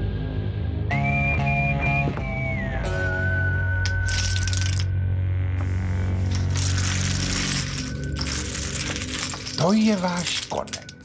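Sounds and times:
background music: 0:00.0 - 0:11.0
casino chips clattering: 0:03.9 - 0:04.9, 0:06.3 - 0:11.0.

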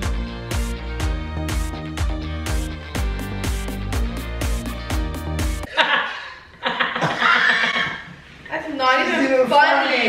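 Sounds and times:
people laughing loudly: 0:05.7 - 0:08.2.

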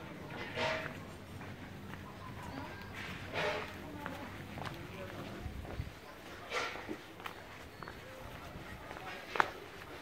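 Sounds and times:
people talking: 0:00.0 - 0:10.0
footsteps on cobblestones: 0:00.1 - 0:10.0.

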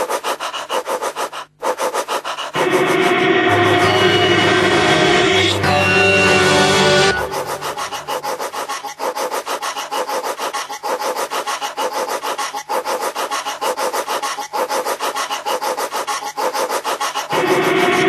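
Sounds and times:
rasping electronic figure: 0:00.0 - 0:18.0.

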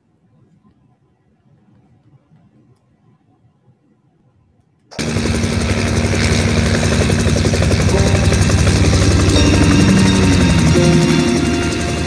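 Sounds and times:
helicopter hovering: 0:05.0 - 0:12.0
music: 0:07.5 - 0:12.0.

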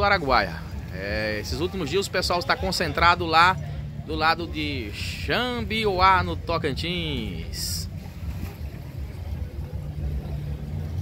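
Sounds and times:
boat motor rumbling: 0:00.0 - 0:11.0.

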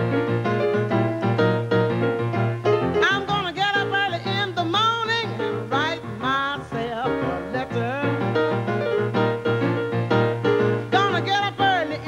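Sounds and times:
blues piano: 0:00.0 - 0:12.0.

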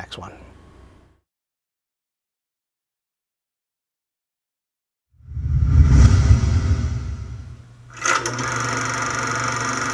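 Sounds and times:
deep whoosh: 0:05.2 - 0:07.8
sudden hit: 0:05.3 - 0:07.8.

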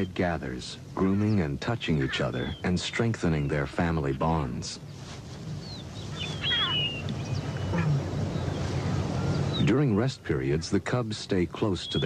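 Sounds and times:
low outdoor background: 0:00.0 - 0:12.0
high animal calls falling pitch: 0:06.1 - 0:08.1.

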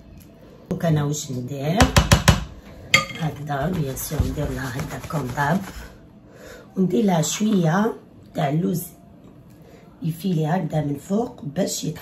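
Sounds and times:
spatula knocking on baking pan: 0:01.8 - 0:04.5
woman speaking: 0:03.0 - 0:05.9, 0:06.8 - 0:09.0, 0:10.0 - 0:12.0.

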